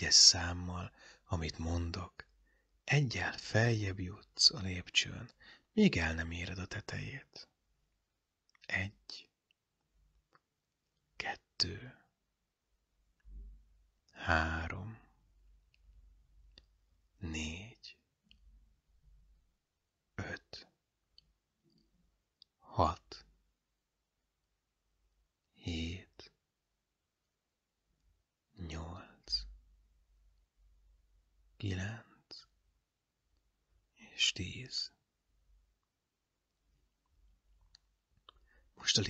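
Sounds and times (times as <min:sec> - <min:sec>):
softly spoken word: 0:00.0 - 0:02.3, 0:02.9 - 0:07.5, 0:08.6 - 0:09.4, 0:11.2 - 0:12.0, 0:14.1 - 0:15.1, 0:17.2 - 0:18.0, 0:20.2 - 0:20.6, 0:22.6 - 0:23.3, 0:25.6 - 0:26.3, 0:28.6 - 0:29.5, 0:31.6 - 0:32.5, 0:34.0 - 0:35.0, 0:38.8 - 0:39.0.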